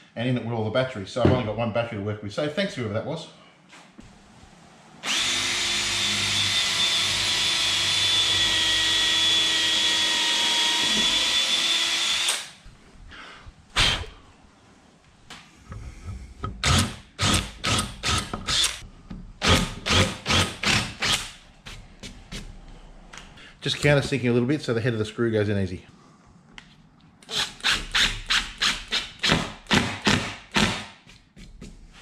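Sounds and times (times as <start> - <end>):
cordless drill whining: 5.0 - 12.6.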